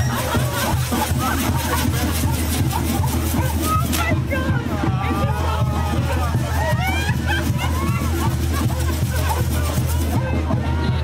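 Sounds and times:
crowd chattering and calling out: 0.0s - 11.0s.

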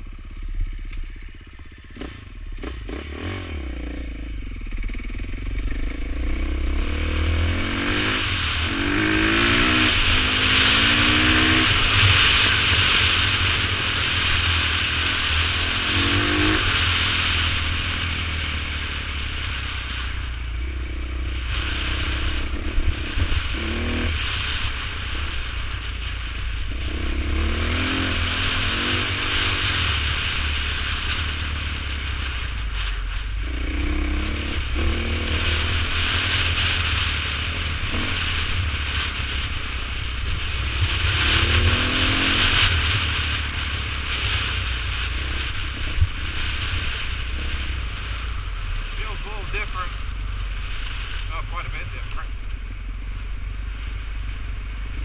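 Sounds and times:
steady rushing noise: 0.0s - 55.0s
dirt bike engine revving: 1.2s - 25.8s, 26.6s - 32.4s, 33.4s - 55.0s.

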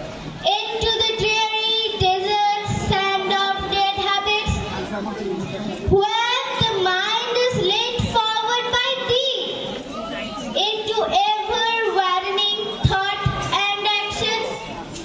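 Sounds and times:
girl singing: 5.9s - 9.6s, 10.6s - 14.6s.

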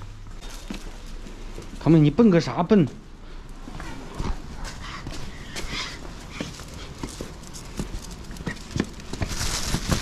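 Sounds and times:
footsteps on stone: 0.0s - 2.1s, 3.6s - 10.0s
plastic bags rustling: 6.1s - 10.0s.

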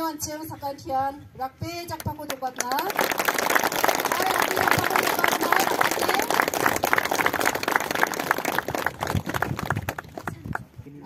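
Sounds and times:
audience applauding: 2.6s - 10.7s.

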